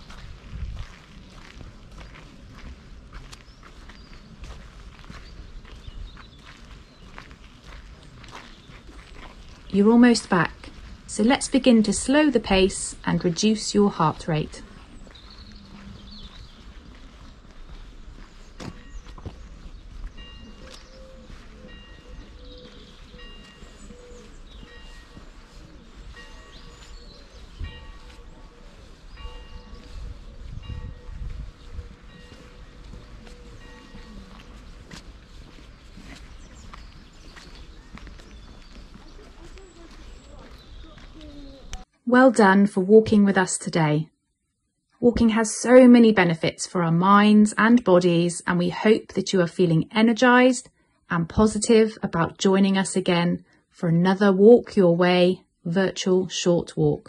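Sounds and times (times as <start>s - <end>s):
wind rumble on microphone: 0.0s - 7.2s, 14.6s - 41.8s
footsteps on dirt path: 0.0s - 41.9s
faint voices: 19.2s - 41.9s.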